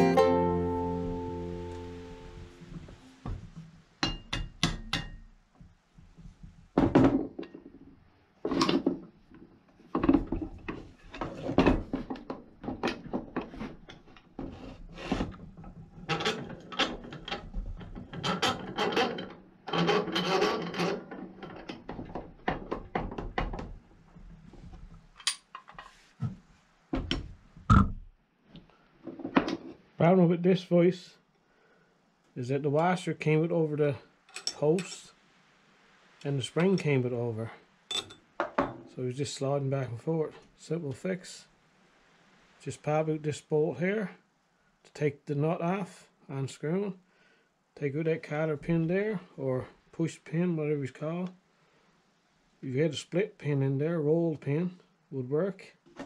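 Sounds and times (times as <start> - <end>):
guitar music: 0.0 - 3.2.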